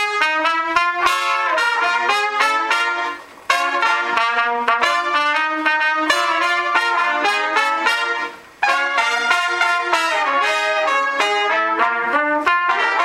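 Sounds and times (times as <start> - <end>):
trumpets playing jazz-funk: 0.0 - 13.0.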